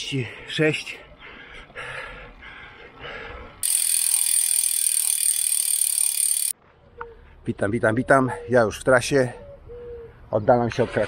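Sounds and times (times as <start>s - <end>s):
bicycle riding noise: 3.1s - 6.5s
bicycle freehub ratchet buzzing: 3.6s - 6.5s.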